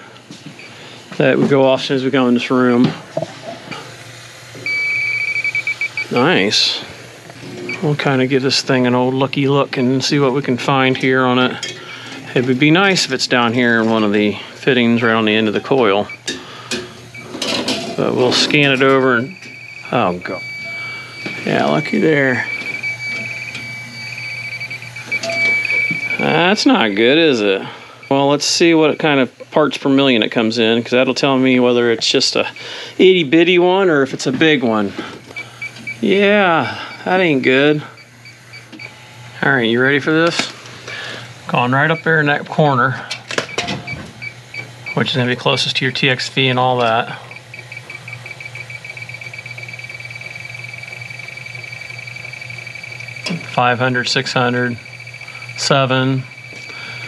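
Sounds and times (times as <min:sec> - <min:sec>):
steady low hum: 0:00.0 - 0:57.0
leak detector rapid high beeping: 0:04.0 - 0:06.9, 0:07.7 - 0:11.5, 0:14.6 - 0:16.4, 0:17.1 - 0:29.3, 0:35.3 - 0:39.0, 0:41.5 - 0:57.0.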